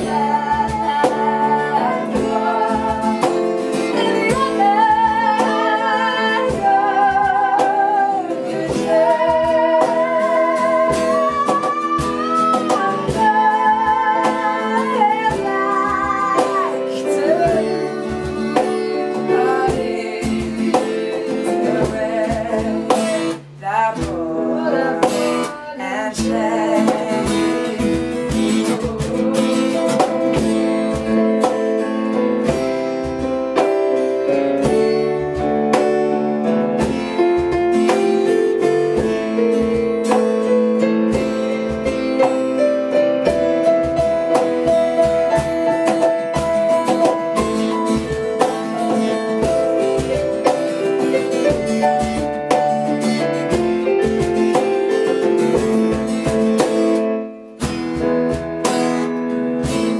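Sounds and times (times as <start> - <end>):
person singing: 0.0 - 31.8
acoustic guitar: 0.0 - 59.9
cajon beat: 0.0 - 59.9
digital keyboard piano sound: 26.4 - 59.9.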